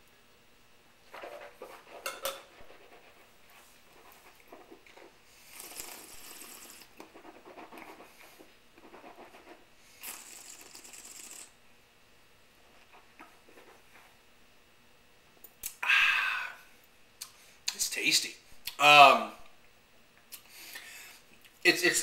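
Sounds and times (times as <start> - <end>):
hissing slurps: 4.4 - 8.3, 9.9 - 11.6.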